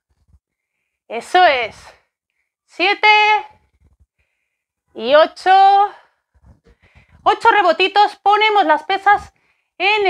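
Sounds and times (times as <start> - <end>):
woman counting aloud: 2.8 - 3.5, 7.3 - 10.0.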